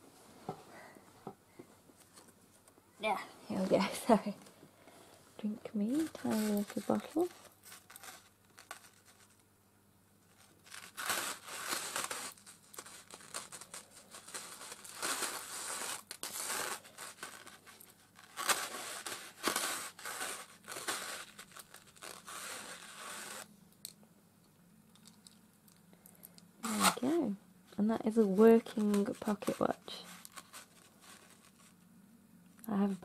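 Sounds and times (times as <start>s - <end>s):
plastic packaging crinkling and tearing: 5.8s - 9.4s, 10.3s - 23.5s, 24.9s - 27.3s, 28.0s - 31.9s, 32.5s - 33.0s.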